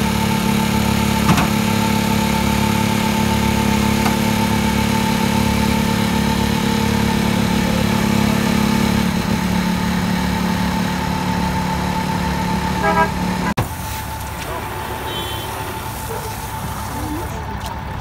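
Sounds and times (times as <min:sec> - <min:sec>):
engine idling: 0:00.0 - 0:18.0.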